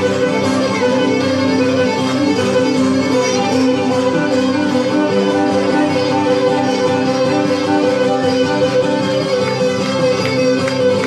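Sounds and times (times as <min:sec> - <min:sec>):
folk dance music on strings: 0:00.0 - 0:11.0.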